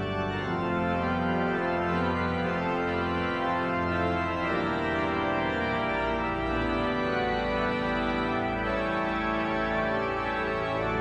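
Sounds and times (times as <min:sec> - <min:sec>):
pipe organ playing hymn chords: 0:00.0 - 0:11.0.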